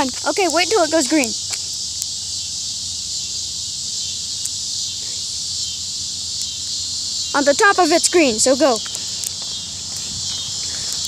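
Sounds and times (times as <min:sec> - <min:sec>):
insects chirring: 0:00.0 - 0:11.0.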